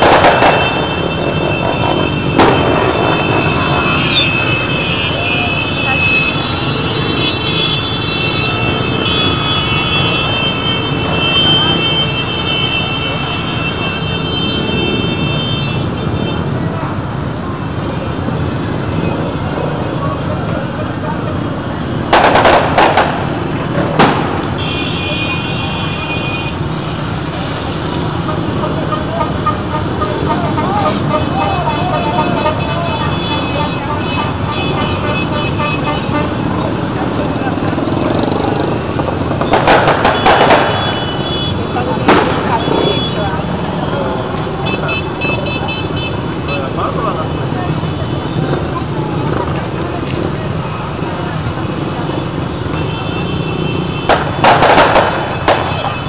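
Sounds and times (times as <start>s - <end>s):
loud sharp bangs: 0.0s - 4.6s, 21.9s - 25.5s, 38.2s - 43.4s, 53.9s - 56.0s
motorcycle engines: 0.0s - 56.0s
voices: 0.0s - 56.0s
horn toots: 28.2s - 36.6s.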